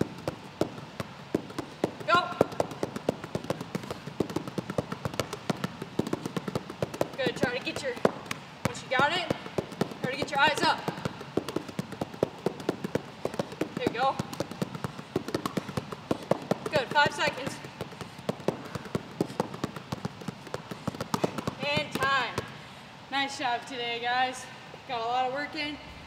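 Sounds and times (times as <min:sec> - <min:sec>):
basketball dribbling on hardwood floor: 0:00.0 - 0:22.6.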